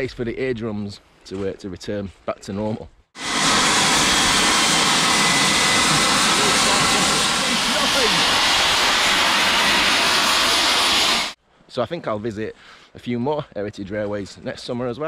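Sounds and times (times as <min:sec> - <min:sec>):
steam locomotive hissing steam: 0:03.2 - 0:11.4.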